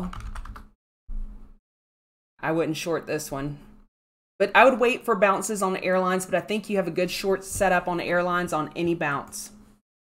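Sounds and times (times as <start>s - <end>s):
keyboard typing: 0.0s - 0.7s.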